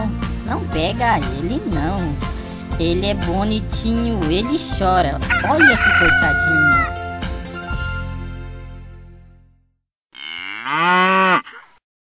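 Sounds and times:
cow mooing: 10.2s - 11.8s.

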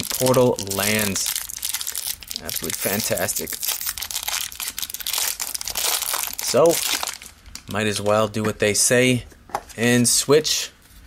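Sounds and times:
plastic wrap crinkling and tearing: 0.0s - 7.7s.

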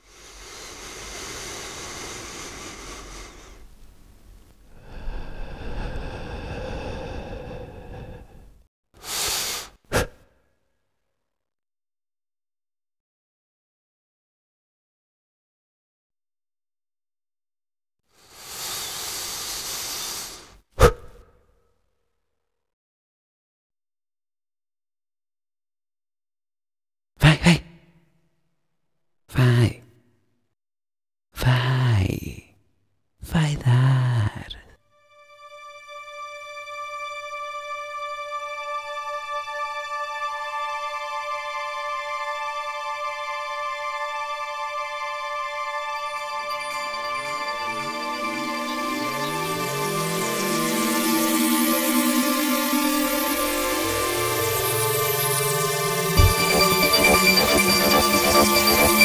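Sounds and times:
breathy vocal gasps: 0.0s - 3.7s, 4.7s - 10.4s.

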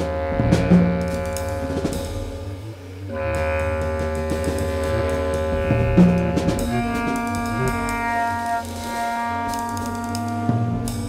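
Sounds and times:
drum and percussion strikes: 0.0s - 11.0s
held low horn and string tones: 0.0s - 11.0s.

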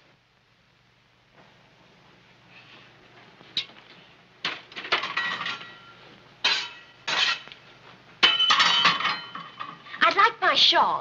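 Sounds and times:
metal fire irons clattering: 4.4s - 7.6s, 8.2s - 10.3s.

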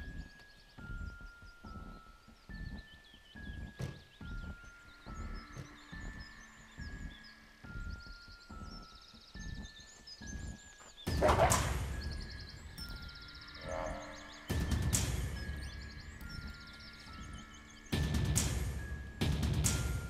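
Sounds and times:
birds chirping: 0.0s - 20.0s
low pulsing beat: 11.1s - 20.0s.

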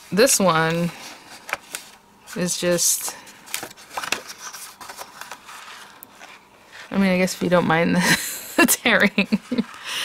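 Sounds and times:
cardstock rustling and crackling: 0.6s - 6.5s.

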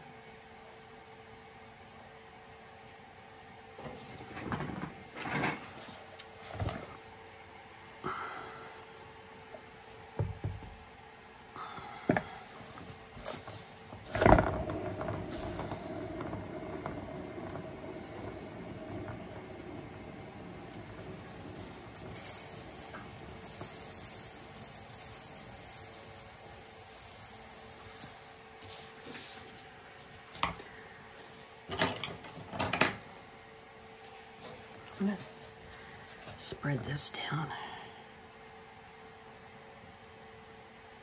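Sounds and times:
turntable bearing whirring: 12.1s - 29.7s.

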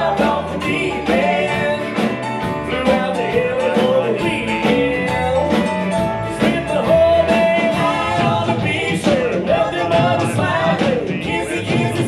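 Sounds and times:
drum kit: 0.0s - 12.0s
man singing: 0.0s - 12.0s.

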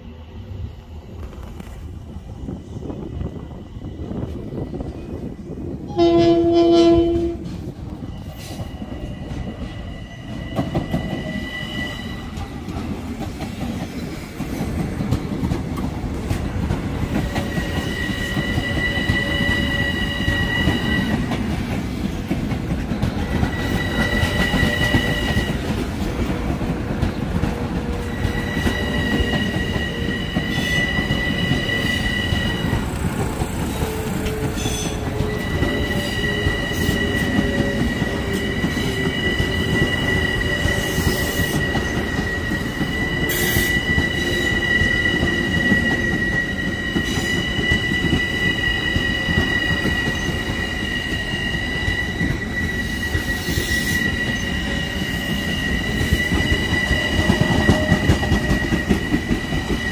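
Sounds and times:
train wheels rumbling on rail: 0.0s - 59.9s
high wheel squeal: 8.0s - 12.4s, 17.1s - 21.3s, 23.3s - 25.7s, 27.9s - 59.9s.

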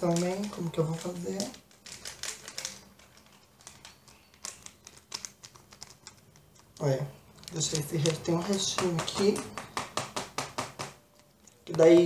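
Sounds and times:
paper sachet clicks and rustles: 0.0s - 9.5s.

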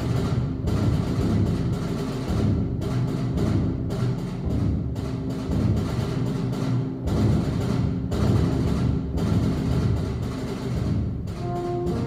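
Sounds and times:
concert band playing: 11.3s - 12.0s.

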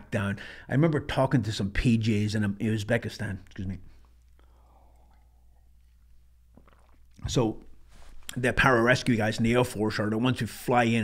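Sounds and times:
faint sip from tumbler: 3.9s - 7.2s.

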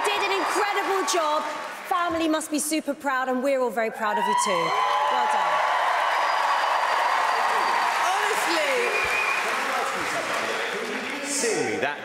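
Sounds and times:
audience applauding and cheering: 0.0s - 2.1s, 4.2s - 12.0s.

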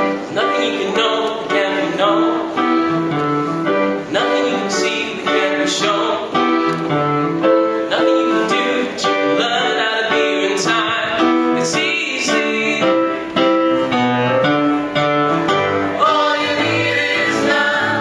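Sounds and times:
vocal group singing: 0.0s - 2.7s, 4.1s - 6.4s, 7.9s - 13.2s, 15.8s - 18.0s
piano playing chords: 0.0s - 18.0s.

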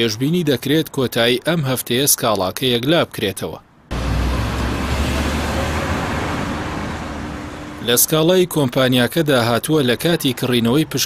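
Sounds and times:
road noise hiss: 3.6s - 11.0s
low engine rumble: 3.9s - 8.0s.

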